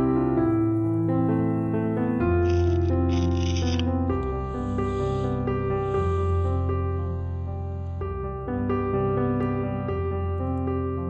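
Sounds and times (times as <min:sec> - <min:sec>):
soft piano music: 0:00.0 - 0:11.0.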